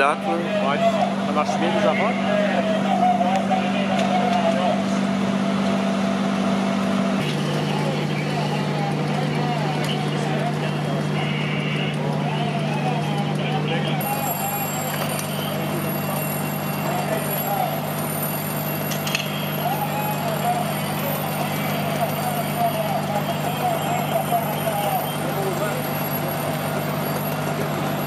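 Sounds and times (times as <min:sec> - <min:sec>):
indistinct voices: 0:00.0 - 0:05.8, 0:07.2 - 0:28.0
diesel engines droning: 0:00.0 - 0:28.0.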